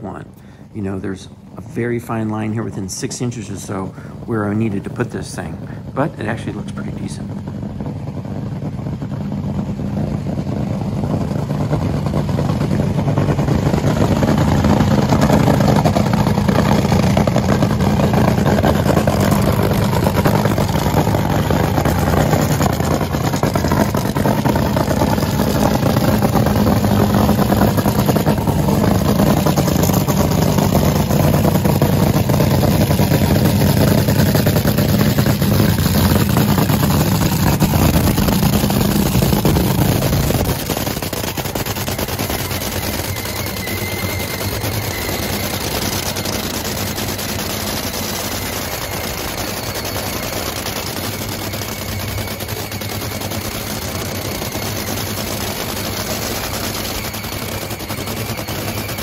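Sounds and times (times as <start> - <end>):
dragster engine idling loud: 0.0 - 59.0.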